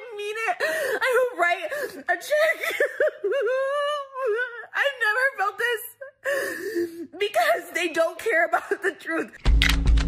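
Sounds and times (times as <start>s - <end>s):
woman crying and wailing: 0.0s - 9.4s.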